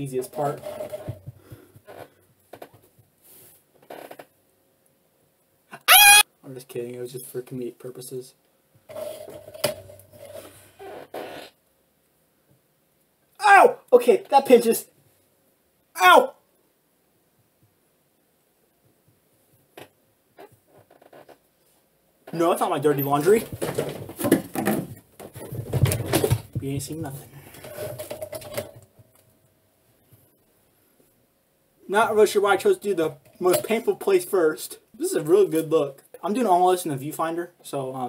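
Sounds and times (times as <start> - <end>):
rustling and scraping: 0.0 - 4.3, 8.8 - 11.6, 19.4 - 29.3
man screaming: 5.8 - 6.2, 13.4 - 13.9, 16.0 - 16.4.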